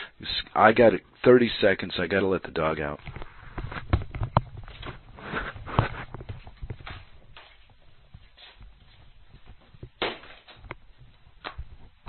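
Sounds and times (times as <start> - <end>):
footsteps walking away: 3.0 - 12.0.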